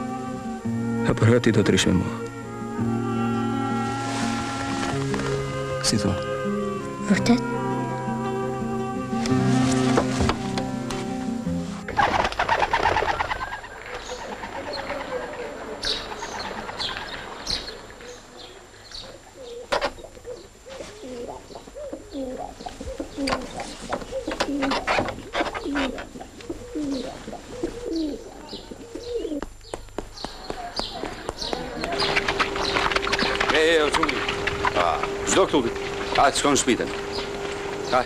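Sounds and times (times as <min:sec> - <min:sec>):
background music: 0:00.0 - 0:12.3
doves cooing: 0:00.0 - 0:38.0
bird chirps: 0:26.7 - 0:38.0.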